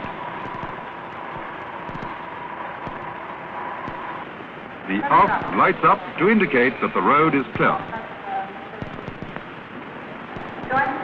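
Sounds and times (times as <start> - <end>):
crackles and clicks: 0.0 - 11.0
steady hiss: 0.0 - 11.0.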